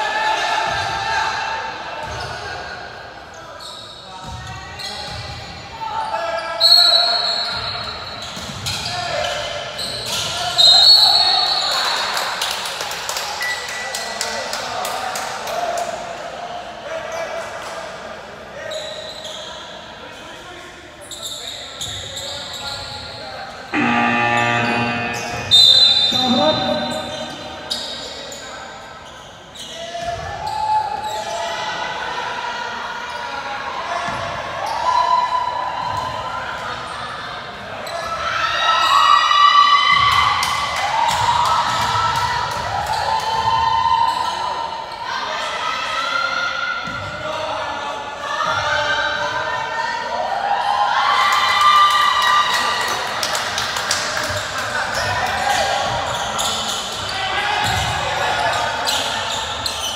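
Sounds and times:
voices echoing in hall: 0:00.0 - 0:59.9.

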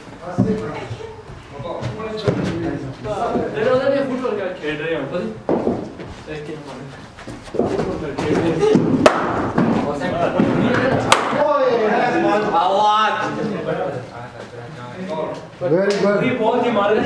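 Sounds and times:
cricket bat striking ball: 0:08.7 - 0:09.8, 0:11.0 - 0:11.4.

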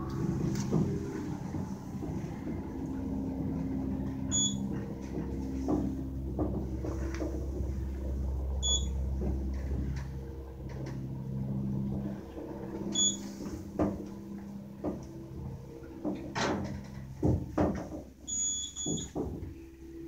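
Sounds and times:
elevator drive humming: 0:00.0 - 0:20.0.

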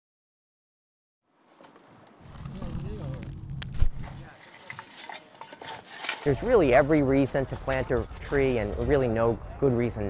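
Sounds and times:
shovel scraping soil: 0:03.7 - 0:09.1.

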